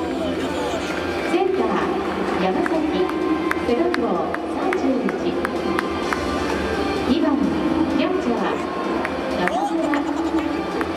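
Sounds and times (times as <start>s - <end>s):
background music: 0.0s - 10.9s
crowd murmur: 0.0s - 10.9s
echoing announcer voice: 7.1s - 10.7s.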